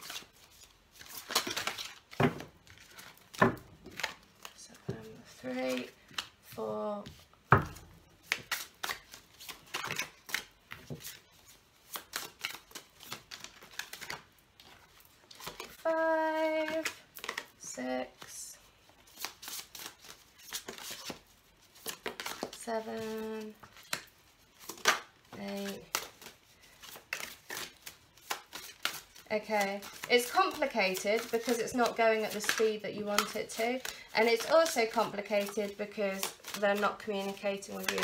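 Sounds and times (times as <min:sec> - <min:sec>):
cards shuffling: 0:00.0 - 0:38.0.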